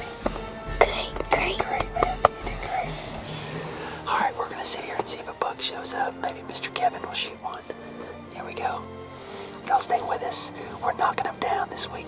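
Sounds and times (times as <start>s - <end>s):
man whispering: 0.8s - 3.3s, 4.0s - 8.9s, 9.6s - 12.0s.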